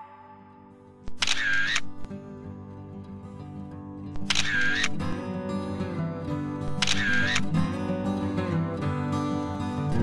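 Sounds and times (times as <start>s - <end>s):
background music: 0.0s - 10.0s
camera shutter sound effect: 1.1s - 2.1s, 4.2s - 5.1s, 6.7s - 7.6s.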